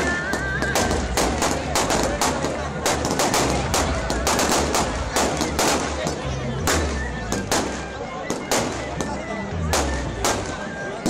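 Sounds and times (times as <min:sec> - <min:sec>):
fireworks banging: 0:00.0 - 0:11.0.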